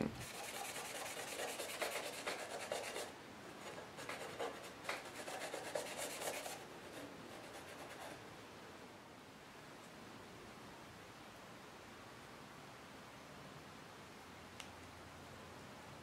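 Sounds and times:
hands rubbing on steel: 0.2s - 3.1s.

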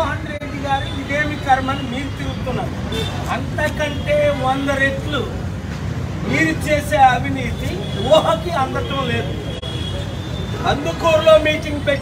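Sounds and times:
man speaking animatedly: 0.0s - 5.5s, 6.2s - 9.5s, 10.6s - 12.0s.

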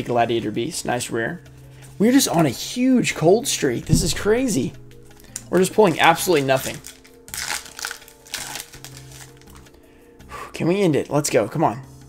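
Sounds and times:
quiet background music: 0.0s - 12.0s
foil wrapper crinkling: 6.6s - 9.8s.

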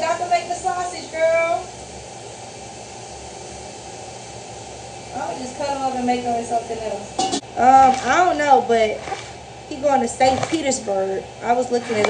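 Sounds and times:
food sizzling in a pan: 0.0s - 12.0s.

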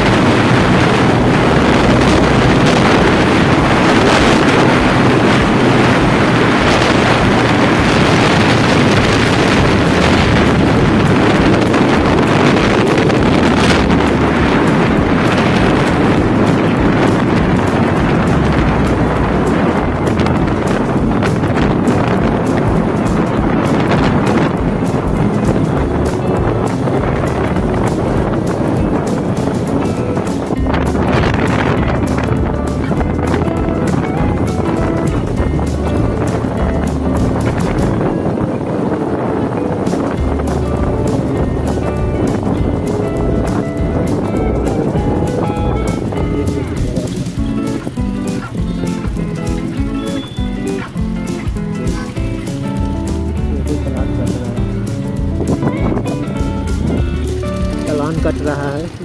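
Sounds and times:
background music: 0.0s - 59.0s
wind buffeting microphone: 0.0s - 59.0s.

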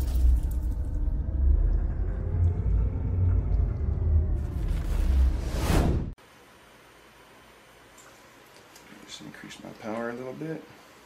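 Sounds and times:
deep pulsing cinematic rumble: 0.0s - 6.2s.

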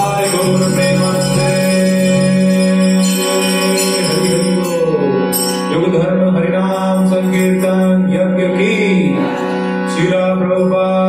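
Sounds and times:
voice chanting: 0.0s - 11.0s.

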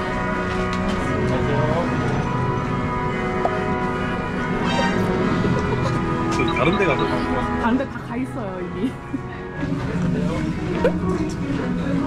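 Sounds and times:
background music with bell chimes: 5.8s - 7.8s.

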